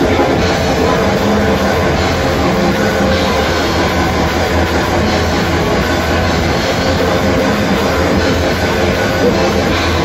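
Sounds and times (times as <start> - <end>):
live metal band playing: 0.0 - 10.0.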